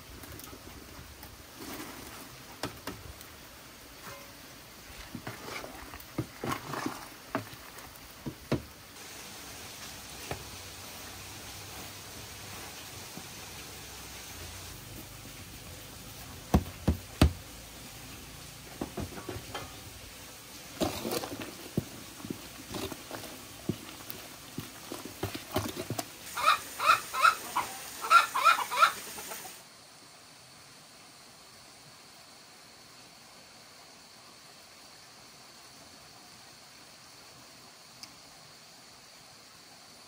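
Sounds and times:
rustling: 0:00.0 - 0:03.1, 0:18.7 - 0:26.4
chickens clucking quickly: 0:26.3 - 0:29.6.

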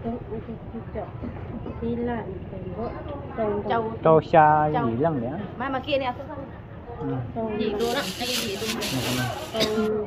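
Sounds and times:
women's voices: 0:00.0 - 0:03.8, 0:07.4 - 0:10.0
plastic bag rustling: 0:07.8 - 0:09.8.

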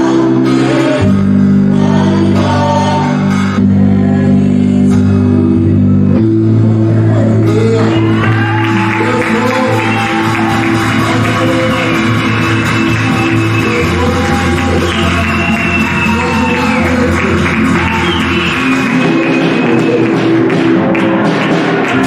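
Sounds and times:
keyboard worship music: 0:00.0 - 0:22.0.

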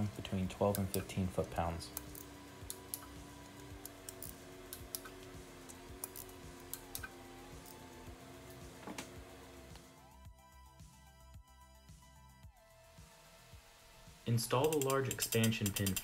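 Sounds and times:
soft background music: 0:00.0 - 0:16.0
torque wrench ratchet clicks: 0:01.8 - 0:07.8, 0:14.4 - 0:16.0.

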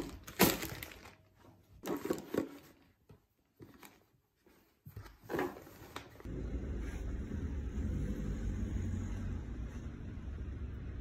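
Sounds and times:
food containers rustling and handled: 0:00.0 - 0:06.3.

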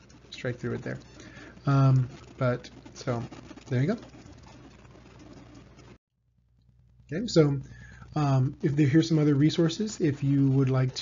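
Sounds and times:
low hum: 0:01.0 - 0:09.4.

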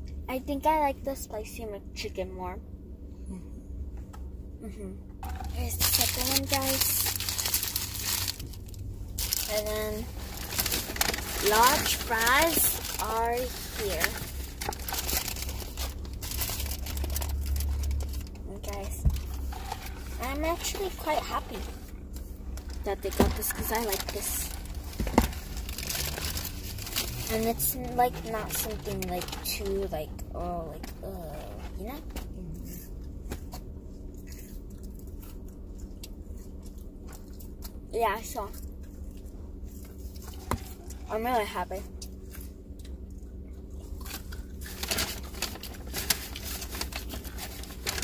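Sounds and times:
steady low hum: 0:00.0 - 0:48.0
paper packaging crinkling: 0:05.5 - 0:21.7, 0:22.6 - 0:29.9, 0:44.0 - 0:48.0
person chewing fries: 0:32.6 - 0:37.9, 0:38.5 - 0:41.0, 0:42.0 - 0:48.0.

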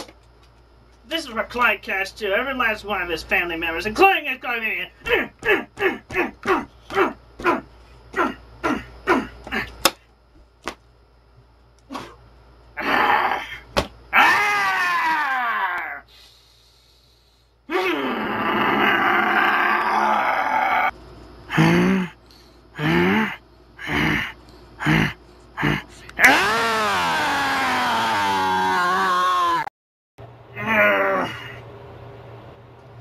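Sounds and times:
man yelling in rage: 0:04.0 - 0:09.3, 0:12.8 - 0:16.0, 0:17.7 - 0:20.9, 0:24.8 - 0:29.7, 0:30.5 - 0:31.5
man screaming: 0:12.8 - 0:16.1, 0:17.7 - 0:20.9, 0:22.8 - 0:29.7, 0:30.5 - 0:31.6.

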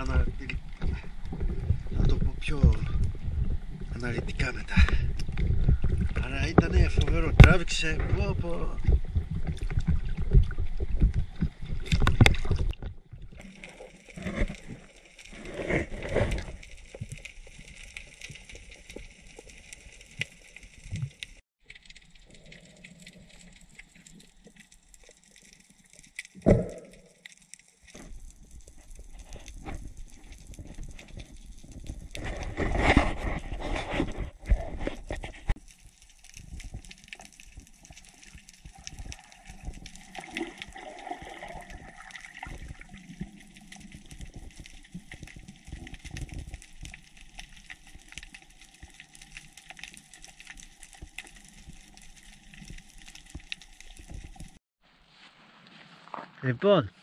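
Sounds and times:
bubbling gurgles: 0:00.0 - 0:17.7, 0:35.8 - 0:54.6
water sloshing and splashing: 0:00.0 - 0:54.6.

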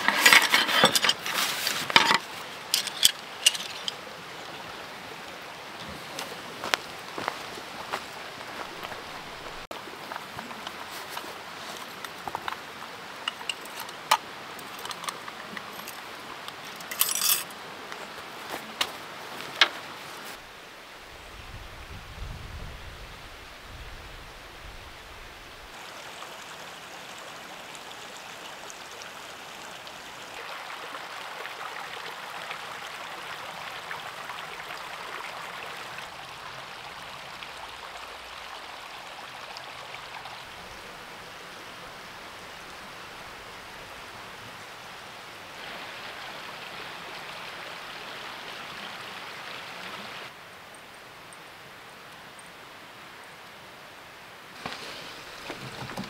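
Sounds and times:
creek water flowing: 0:00.0 - 0:56.0.

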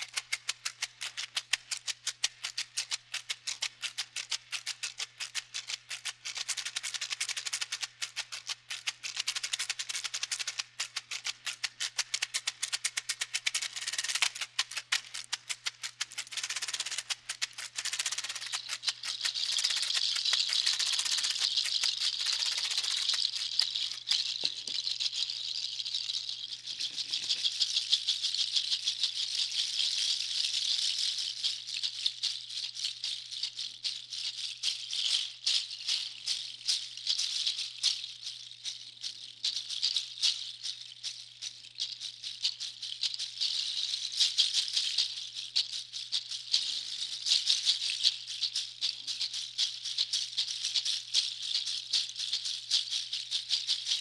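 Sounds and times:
shaker hissing: 0:00.0 - 0:54.0
nutshell and hoof rattles clacking: 0:07.0 - 0:54.0.

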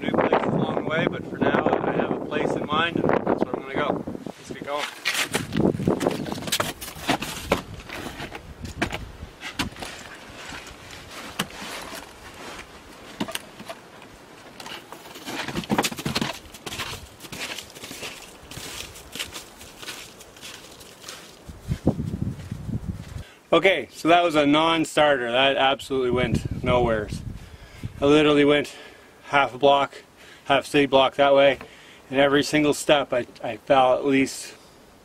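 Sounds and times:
gear knocking and rustling: 0:04.8 - 0:21.2
snowshoe footsteps crunching snow: 0:09.7 - 0:13.6, 0:14.7 - 0:23.2.

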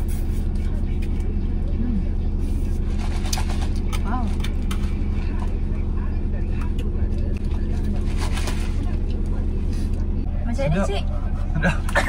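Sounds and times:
car idling from inside cabin: 0:00.0 - 0:12.0.

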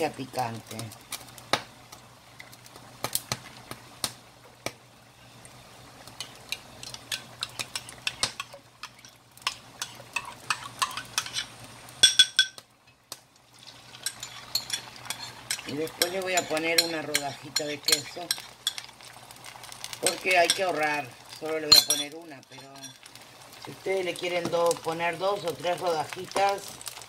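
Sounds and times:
eggs sizzling: 0:00.0 - 0:27.0
hot oil crackling in a frying pan: 0:00.0 - 0:27.0.

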